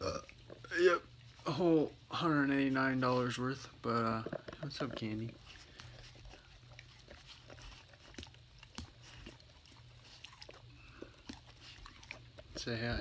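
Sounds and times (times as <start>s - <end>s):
dog mouth noises and clicks: 4.1s - 12.8s.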